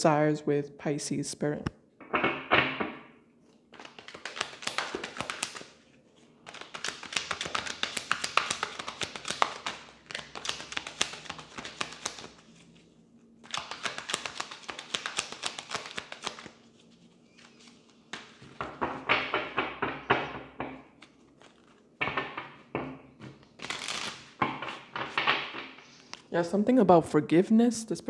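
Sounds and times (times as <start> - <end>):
cards being shuffled: 3.5 - 19.4, 20.9 - 22.6, 23.2 - 26.3.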